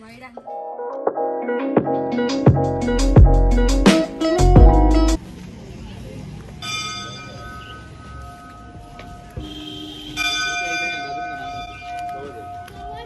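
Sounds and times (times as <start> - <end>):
temple bells ringing: 6.6 - 13.0.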